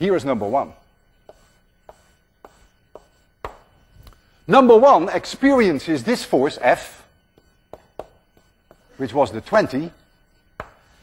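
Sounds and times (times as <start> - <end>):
chalk tapping on blackboard: 0.4 - 3.9, 7.3 - 9.0, 10.5 - 11.0.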